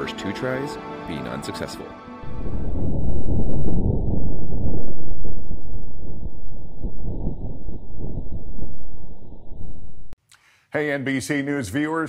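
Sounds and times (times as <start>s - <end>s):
low rumbling wind: 2.2s - 10.2s.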